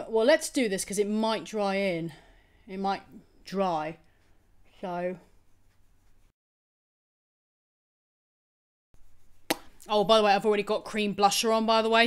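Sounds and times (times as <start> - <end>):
brush tapping on skin: 5.4 - 6.3, 9.0 - 10.4.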